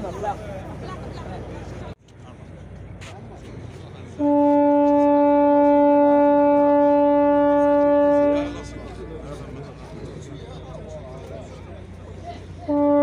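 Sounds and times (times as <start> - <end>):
boat horn blast: 4.2 - 9.0, 12.6 - 13.0.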